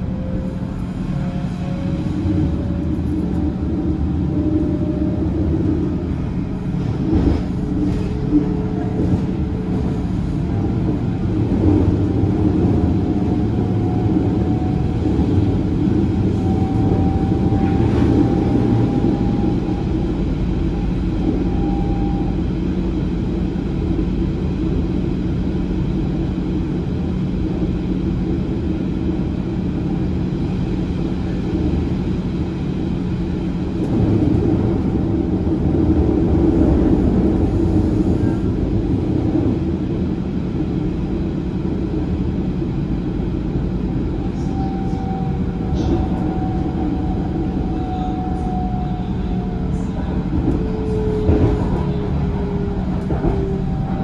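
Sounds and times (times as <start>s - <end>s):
train wheels rumbling: 0.0s - 54.0s.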